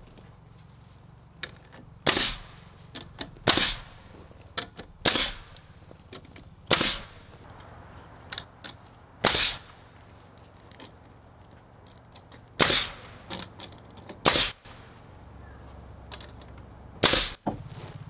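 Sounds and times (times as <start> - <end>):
nail gun shots into lumber: 2.0 - 2.5, 3.4 - 4.0, 5.0 - 5.6, 6.7 - 7.2, 9.2 - 9.7, 12.6 - 13.2, 14.2 - 14.7, 17.0 - 17.6.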